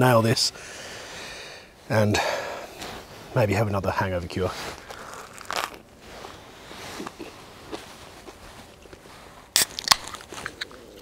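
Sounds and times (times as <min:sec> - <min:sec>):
crunchy chewing: 0:04.7 - 0:11.0.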